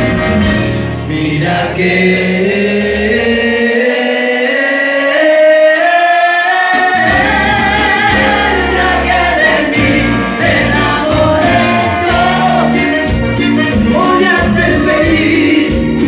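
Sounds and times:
accordion: 0:00.0 - 0:16.0
keyboard: 0:00.0 - 0:16.0
live cumbia band: 0:00.0 - 0:16.0
man singing long notes: 0:01.1 - 0:13.2.

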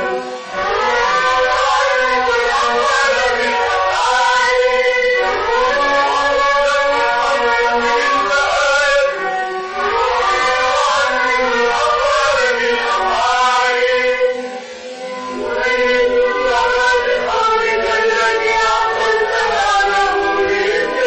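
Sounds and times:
vocal trio singing: 0:00.0 - 0:21.0.

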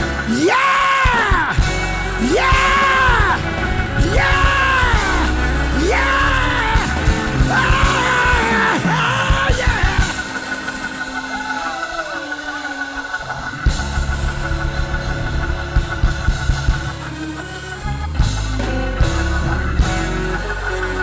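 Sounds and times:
band playing praise music: 0:00.0 - 0:21.0
man yelling: 0:00.3 - 0:01.6, 0:02.2 - 0:03.4, 0:04.0 - 0:10.2.

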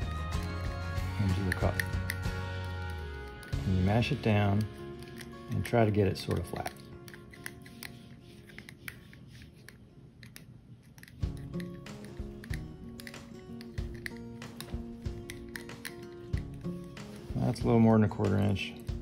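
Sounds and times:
background music: 0:00.0 - 0:19.0
plastic spoon scraping in cup: 0:00.4 - 0:19.0.

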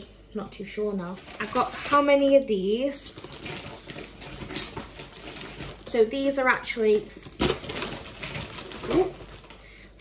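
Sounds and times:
plastic bottles crinkling: 0:00.9 - 0:10.0.

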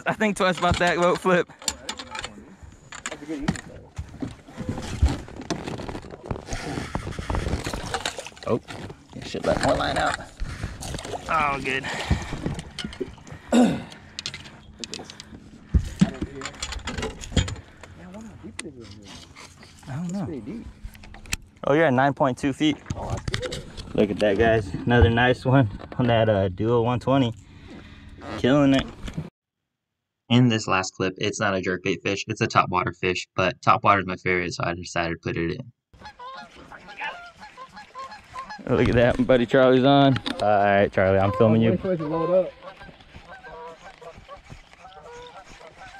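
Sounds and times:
fish thrashing against boat: 0:04.0 - 0:18.0
geese honking: 0:36.0 - 0:38.7, 0:41.0 - 0:45.9.

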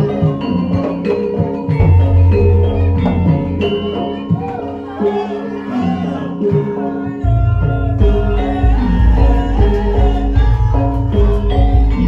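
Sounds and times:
gamelan sustained tones: 0:00.0 - 0:12.0.

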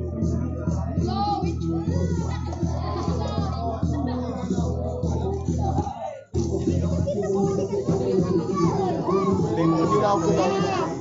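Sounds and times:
background music with held notes: 0:00.0 - 0:11.0
crowd talking and calling out: 0:00.0 - 0:11.0.

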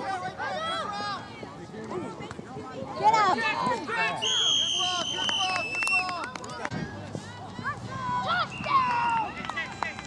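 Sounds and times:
voices on a sports field: 0:00.0 - 0:10.0
referee's whistle long blast: 0:04.2 - 0:05.9.

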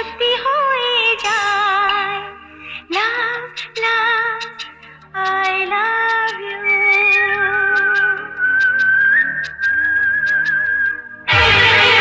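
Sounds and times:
light percussion ticks: 0:02.9 - 0:11.0
whistled melody: 0:06.2 - 0:11.6.

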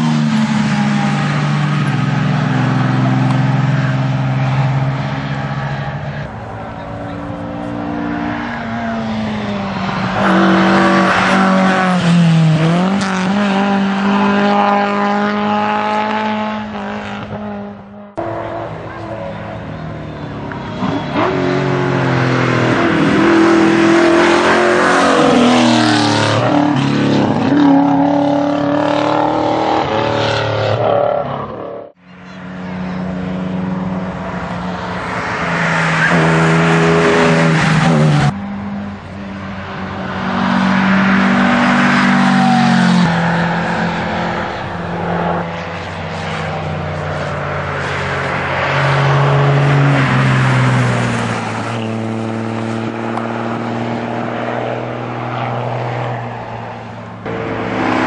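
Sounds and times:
rally car engines revving past: 0:00.0 - 0:58.0.

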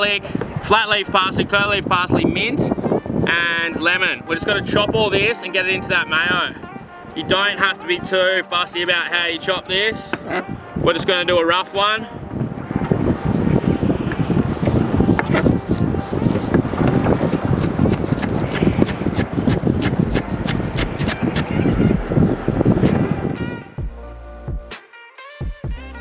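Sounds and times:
wind: 0:00.0 - 0:24.7
guitar music: 0:20.0 - 0:23.8.

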